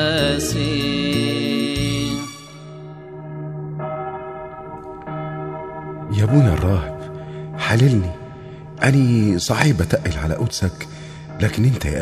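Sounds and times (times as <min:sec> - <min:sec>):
bell ringing: 0:00.0 - 0:12.0.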